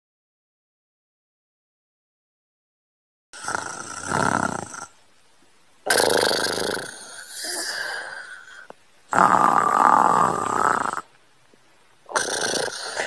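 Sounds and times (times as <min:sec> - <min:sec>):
snoring: 0:03.4 - 0:05.0, 0:05.8 - 0:11.1, 0:12.1 - 0:13.0.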